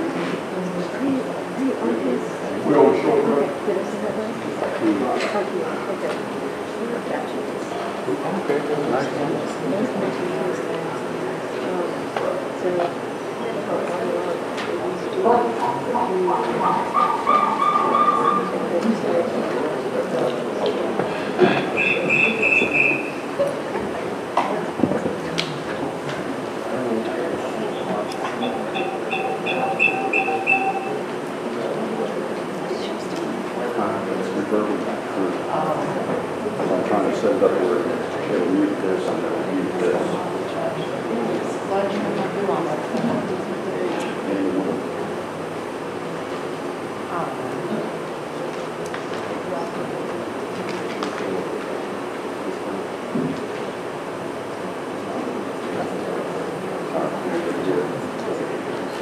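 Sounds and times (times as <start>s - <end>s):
murmur of people talking: 0.0s - 59.0s
phone ringtone beeps: 28.4s - 31.0s.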